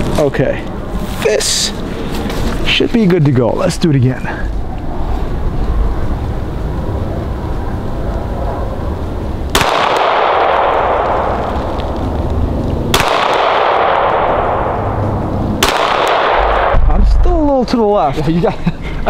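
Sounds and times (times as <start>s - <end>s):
pistol shots with long echo: 9.5s - 11.5s, 12.9s - 16.9s.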